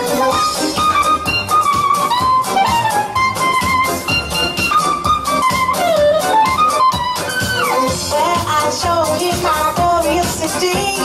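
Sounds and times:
upbeat brass band music: 0:00.0 - 0:11.0.

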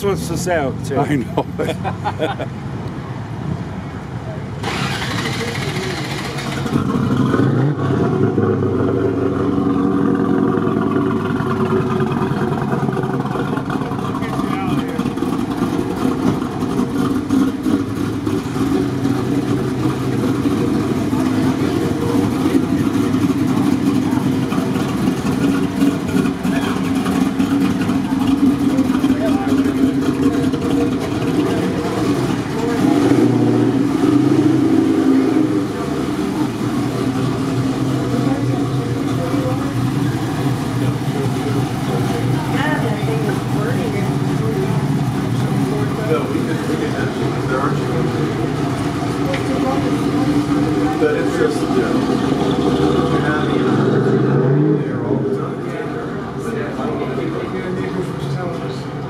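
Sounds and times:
car engine starting and running: 0:00.0 - 0:59.0.

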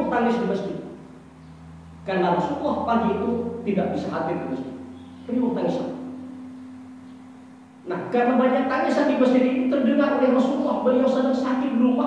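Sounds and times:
person speaking: 0:02.0 - 0:06.3, 0:07.8 - 0:12.0.

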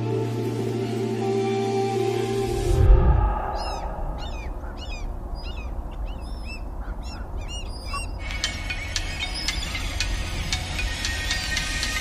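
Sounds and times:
bird chirping: 0:03.3 - 0:12.0.

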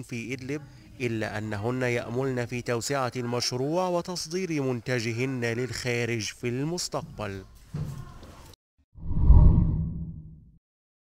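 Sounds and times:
deep whoosh: 0:09.0 - 0:10.5.

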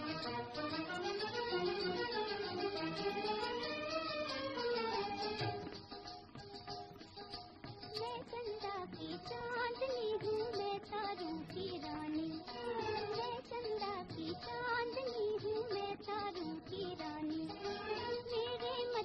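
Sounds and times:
woman singing: 0:00.0 - 0:02.1, 0:07.9 - 0:19.0
orchestral accompaniment: 0:00.0 - 0:05.9.

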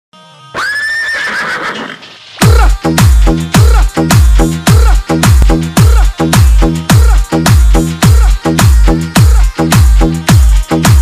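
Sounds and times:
horse neighing: 0:00.6 - 0:02.0.

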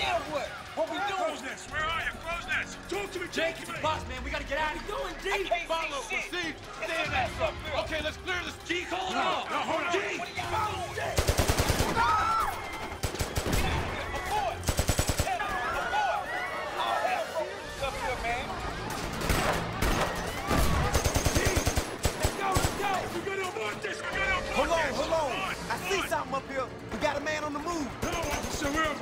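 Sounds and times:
people shouting: 0:08.4 - 0:26.1
automatic gunfire bursts: 0:11.2 - 0:15.5, 0:19.1 - 0:23.1.

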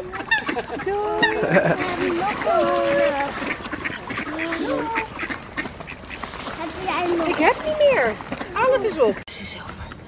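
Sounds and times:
ducks quacking: 0:00.0 - 0:09.2
person laughing: 0:00.5 - 0:01.9.

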